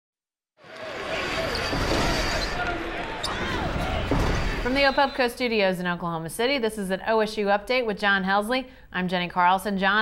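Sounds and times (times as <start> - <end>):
crowd noise: 0.6 - 5.5.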